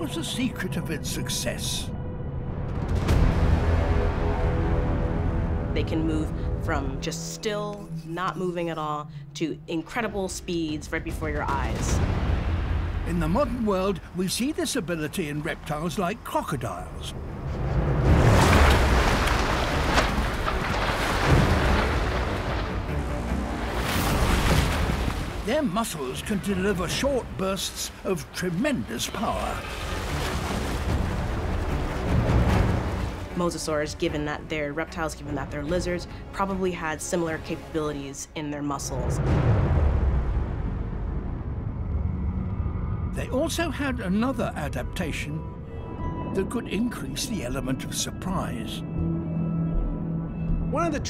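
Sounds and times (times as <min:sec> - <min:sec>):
deep rumble: 0:16.8 - 0:36.2, 0:38.9 - 0:47.7
heavy water splashing: 0:17.2 - 0:34.3.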